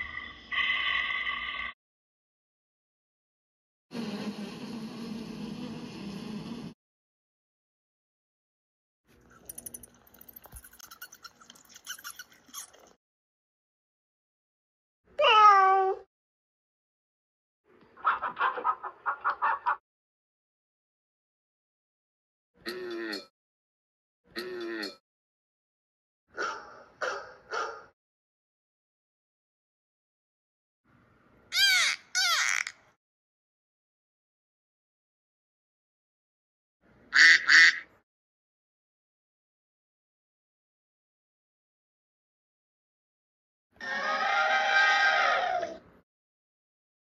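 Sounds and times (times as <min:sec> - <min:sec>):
cat meowing: 0:15.2 - 0:16.0
duck quacking: 0:37.2 - 0:37.9.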